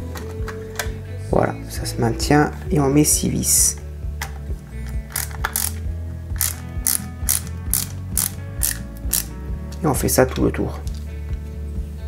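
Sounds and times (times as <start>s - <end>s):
ratcheting screwdriver clicking: 4.8s - 5.8s, 6.4s - 9.4s.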